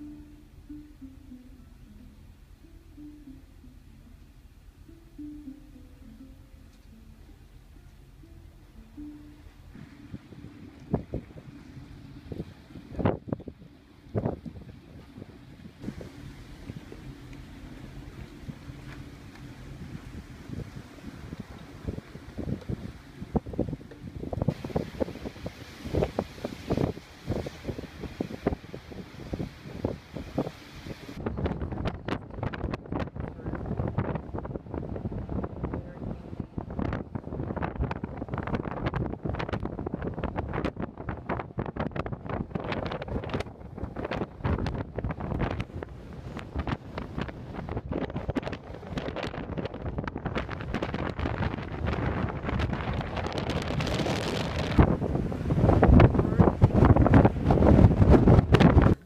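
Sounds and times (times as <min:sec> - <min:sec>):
wind buffeting the microphone: 0:09.6 - 0:59.0.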